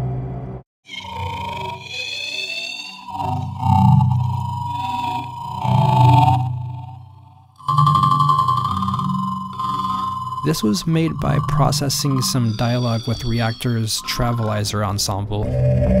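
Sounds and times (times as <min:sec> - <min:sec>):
low hum drone: 0:00.0 - 0:16.0
high gliding tones: 0:00.9 - 0:16.0
steady high tone: 0:00.9 - 0:16.0.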